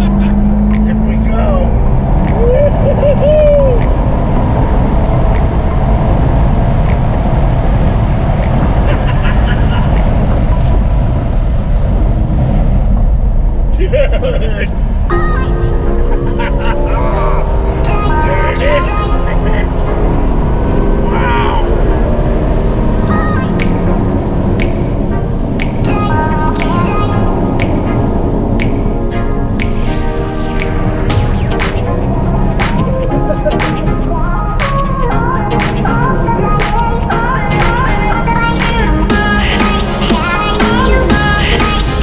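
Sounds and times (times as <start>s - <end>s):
car engine and road noise: 0.0s - 42.0s
voices talking: 13.8s - 20.1s.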